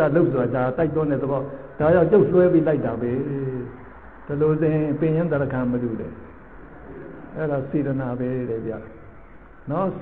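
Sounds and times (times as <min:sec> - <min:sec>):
man talking: 0:00.0 - 0:06.3, 0:07.3 - 0:10.0.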